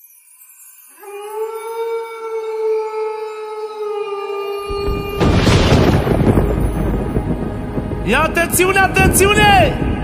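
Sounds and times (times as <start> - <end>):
wolf howling: 1.0 - 6.0
deep boom: 4.8 - 10.0.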